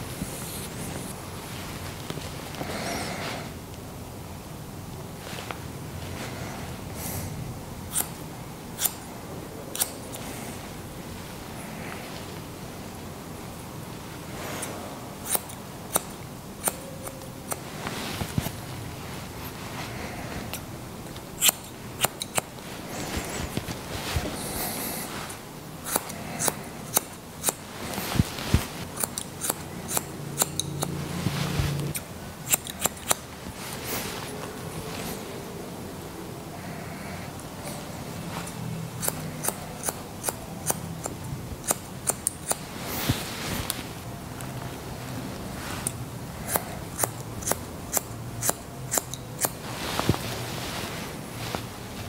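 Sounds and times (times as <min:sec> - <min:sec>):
scissors snipping hair: 0:07.9 - 0:08.2, 0:08.8 - 0:09.1, 0:09.7 - 0:10.2, 0:14.6 - 0:17.6, 0:20.5 - 0:22.5, 0:25.8 - 0:27.6, 0:28.9 - 0:31.0, 0:31.9 - 0:33.3, 0:39.0 - 0:42.6, 0:45.8 - 0:49.6
rustle: 0:17.3 - 0:20.5, 0:30.9 - 0:32.4, 0:42.6 - 0:46.0, 0:49.4 - 0:52.0.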